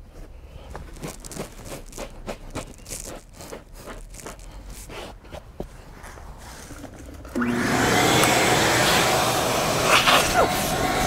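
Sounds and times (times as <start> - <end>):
brush scrubbing cloth upholstery: 0.0 - 6.6, 8.4 - 11.0.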